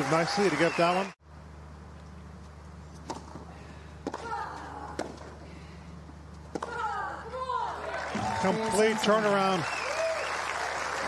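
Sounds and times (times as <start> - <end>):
steady low hum: 1.2 - 8.4
racket striking tennis ball: 2.9 - 5.3.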